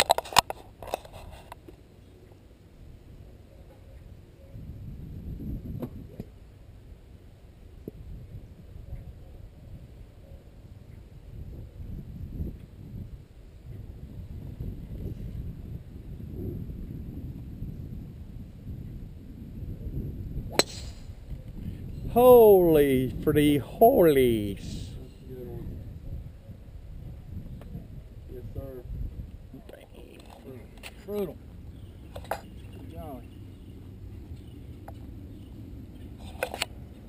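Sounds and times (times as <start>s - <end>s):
golf club striking ball: 20.5s - 21.2s.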